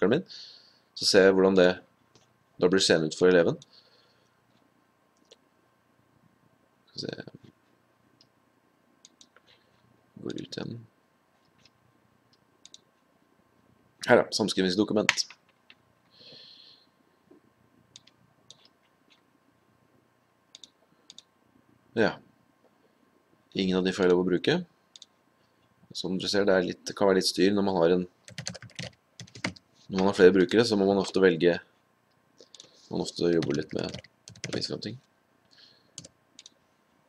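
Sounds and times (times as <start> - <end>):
faint mouse clicks: 9.0 - 9.6, 11.4 - 12.9, 17.9 - 19.2, 20.5 - 21.3, 24.9 - 25.1, 32.4 - 32.8, 36.0 - 36.6
computer keyboard typing: 28.2 - 30.1, 32.5 - 34.7, 36.0 - 36.6.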